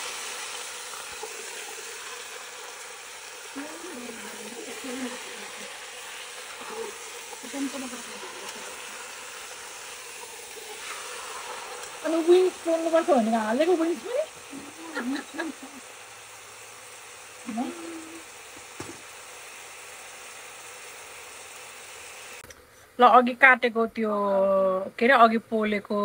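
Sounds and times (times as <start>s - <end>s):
chicken sizzling in a pot: 0.0s - 22.4s.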